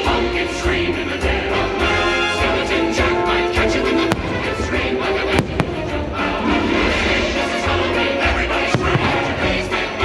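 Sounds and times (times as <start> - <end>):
orchestral music: 0.0 - 10.0
fireworks bangs: 4.0 - 6.4, 8.7 - 9.7.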